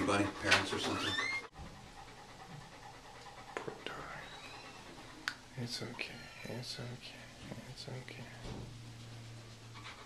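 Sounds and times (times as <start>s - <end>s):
dog panting: 0.0s - 6.2s, 8.8s - 10.0s.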